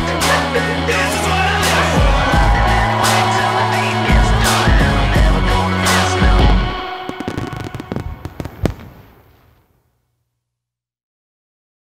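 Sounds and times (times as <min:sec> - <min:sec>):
fireworks cracking and popping: 0:06.4 - 0:09.9.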